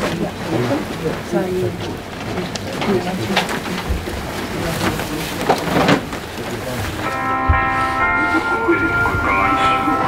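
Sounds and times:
indistinct crowd voices: 0:00.0 - 0:10.0
rustling: 0:00.4 - 0:09.2
music with held chord: 0:07.1 - 0:10.0.

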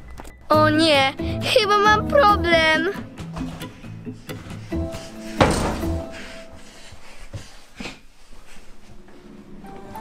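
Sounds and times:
background music: 0:00.0 - 0:06.9, 0:09.2 - 0:10.0
door slamming: 0:05.4 - 0:06.1.

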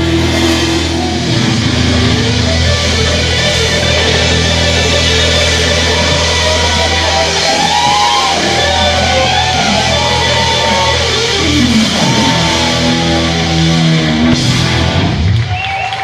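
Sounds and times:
electric guitar lead: 0:00.0 - 0:15.5
bass guitar: 0:00.0 - 0:16.0
drums: 0:00.0 - 0:16.0.

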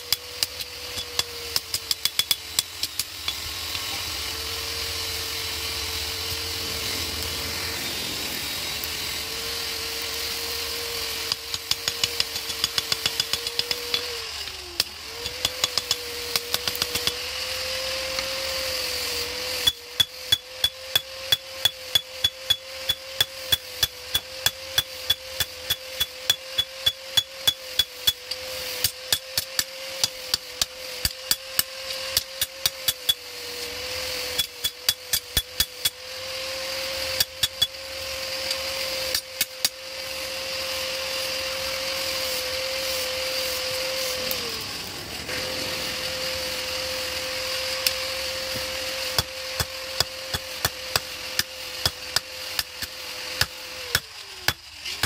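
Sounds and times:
hammer striking blade on anvil: 0:00.1 - 0:03.1
steady hum: 0:02.9 - 0:14.6, 0:41.5 - 0:50.4.

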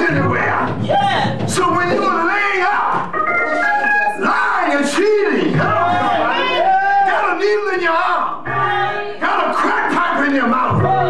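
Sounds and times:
congregation shouting: 0:00.0 - 0:11.0.

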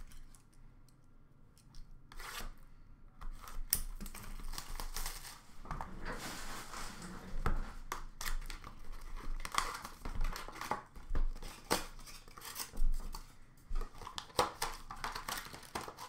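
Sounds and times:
wrapper crinkling and tearing: 0:03.9 - 0:05.6, 0:08.2 - 0:12.7, 0:14.0 - 0:16.0.

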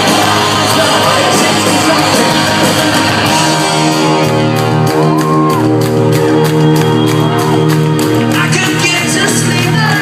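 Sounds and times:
live rock band playing: 0:00.0 - 0:10.0
audience shouts and whoops: 0:04.4 - 0:08.0.

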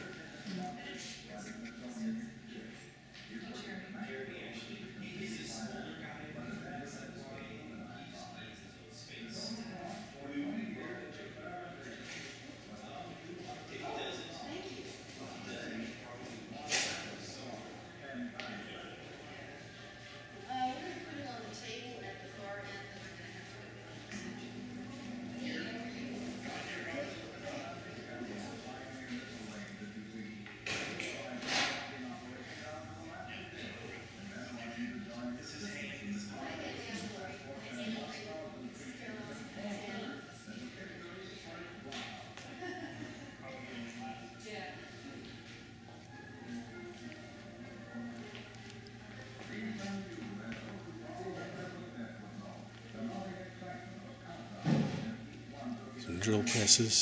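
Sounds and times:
faint indistinct voices: 0:00.0 - 0:57.0.

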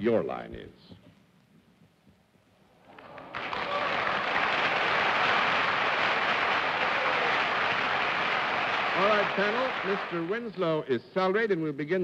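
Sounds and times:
audience applause: 0:02.8 - 0:10.6.

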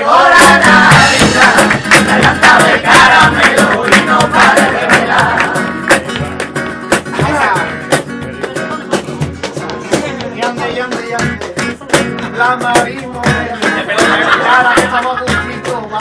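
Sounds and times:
crowd singing a carol: 0:00.0 - 0:06.0
rhythmic clapping: 0:00.0 - 0:16.0
strummed acoustic guitar: 0:00.0 - 0:16.0.

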